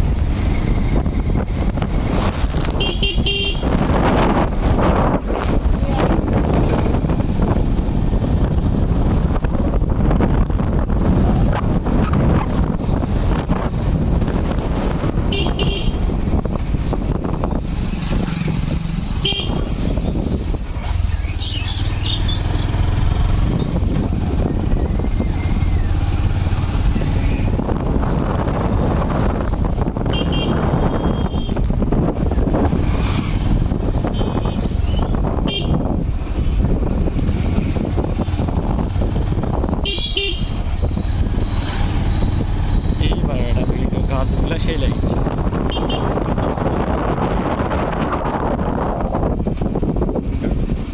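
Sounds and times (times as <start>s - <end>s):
motorcycle engine rumble: 0.0s - 50.9s
wind on microphone: 0.0s - 50.9s
high-pitched horn toots: 39.8s - 40.6s.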